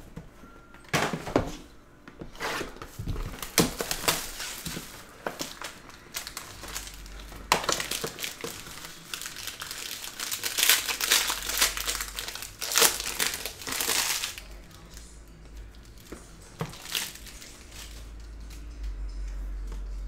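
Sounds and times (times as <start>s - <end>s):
plastic wrap crinkling: 2.8s - 18.6s.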